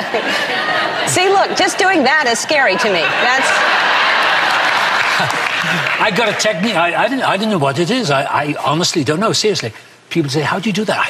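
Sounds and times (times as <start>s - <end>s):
studio audience applauding: 3.2s - 7.0s
man speaking: 5.2s - 11.0s.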